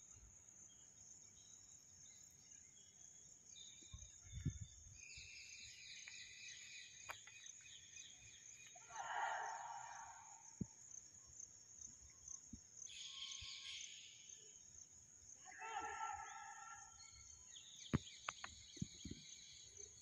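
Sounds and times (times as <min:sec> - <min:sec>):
brief louder insect call: 0:00.0 - 0:20.0
insects chirring: 0:00.0 - 0:20.0.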